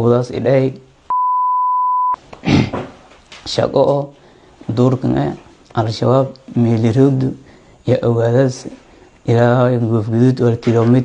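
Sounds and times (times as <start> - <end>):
speech: 0.0 - 0.9, 3.4 - 11.0
censor bleep: 1.1 - 2.2.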